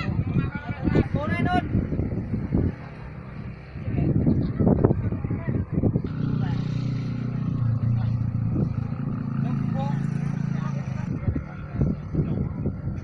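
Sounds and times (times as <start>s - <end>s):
voices: 0.0s - 13.0s.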